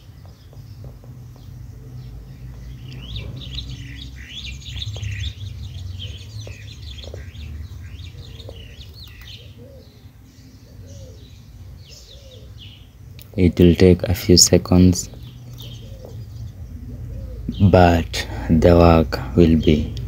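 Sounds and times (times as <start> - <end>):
birds chirping: 0.0 - 20.0
lower wavering bird calls: 0.0 - 20.0
steady low hum: 0.0 - 20.0.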